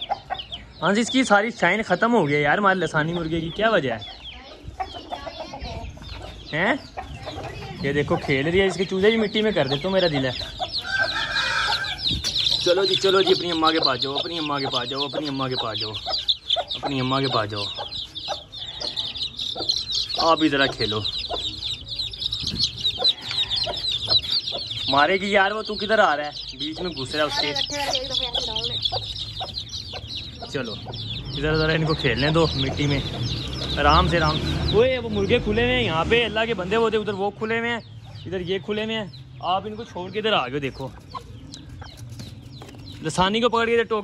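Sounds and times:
chickens clucking: 0.0 - 44.0
chicks chirping: 0.0 - 44.0.

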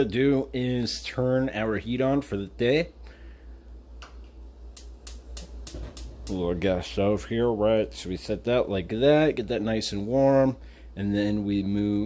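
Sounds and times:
spark igniter clicking: 4.0 - 6.5.

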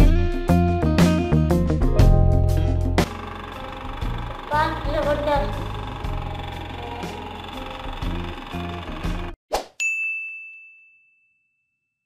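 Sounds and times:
background music: 0.0 - 9.4
bright ding: 9.8 - 11.7.

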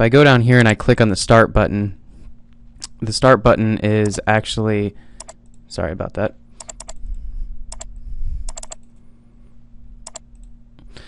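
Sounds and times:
steady low hum: 0.0 - 11.0
computer mouse clicks: 5.2 - 5.6, 6.6 - 7.0, 7.7 - 7.9, 8.5 - 9.0, 10.0 - 10.5.

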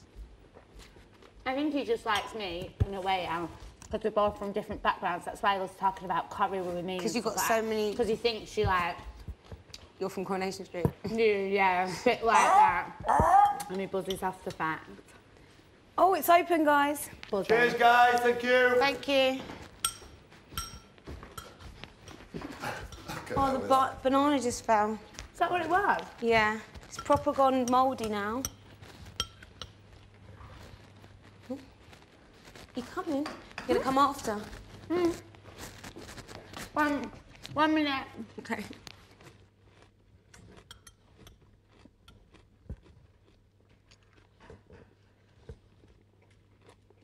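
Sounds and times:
quiet chewing: 19.5 - 47.0
metal spoon clinking a bowl: 19.8 - 22.2, 26.9 - 29.8, 40.7 - 41.4
crockery clinking: 19.8 - 23.4.

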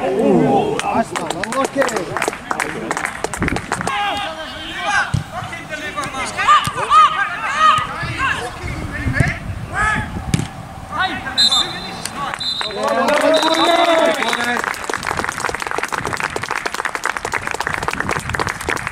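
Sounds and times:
people clapping: 0.7 - 4.2, 12.0 - 18.9
players shouting: 3.8 - 8.7, 9.6 - 14.6
referee's whistle: 11.4 - 14.5.

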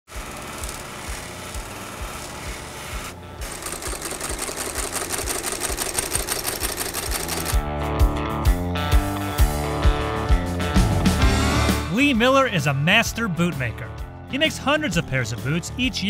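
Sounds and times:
buffing wheel on leather: 0.1 - 5.4
stitching machine sewing: 0.1 - 7.6
guitar music: 7.1 - 16.0.

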